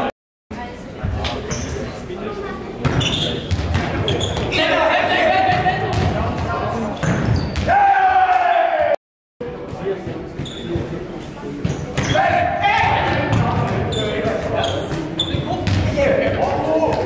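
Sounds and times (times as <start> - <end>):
players shouting calls: 7.6 - 9.0, 12.0 - 13.5.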